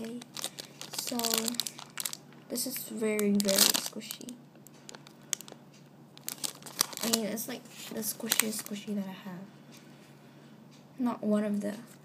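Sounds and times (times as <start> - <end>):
plastic packaging crinkling: 0.0 - 9.0.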